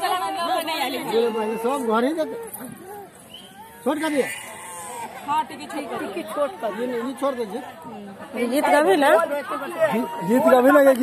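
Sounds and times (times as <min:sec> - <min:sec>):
group of voices talking and calling: 0:00.0 - 0:11.0.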